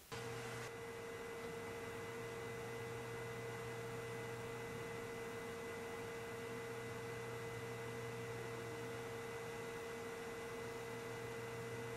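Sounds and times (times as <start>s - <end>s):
steady electronic hum: 0.0s - 11.9s.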